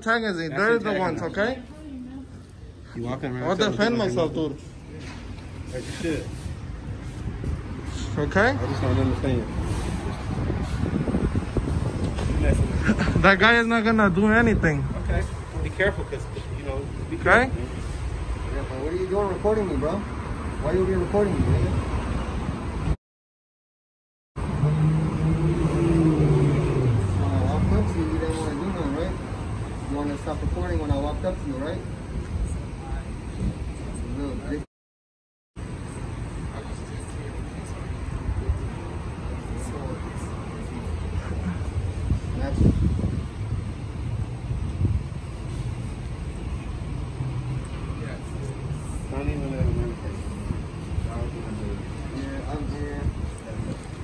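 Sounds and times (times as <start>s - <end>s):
vehicle engine humming: 24.4s - 34.5s.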